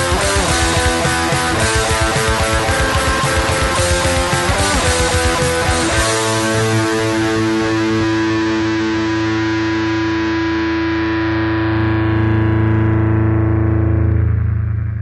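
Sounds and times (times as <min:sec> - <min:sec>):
distorted electric guitar chord: 0:00.0 - 0:15.0.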